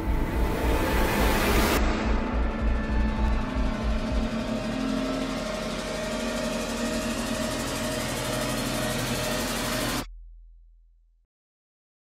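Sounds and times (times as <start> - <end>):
rising wash of noise: 0.0 - 5.9
sustained tones: 0.0 - 10.1.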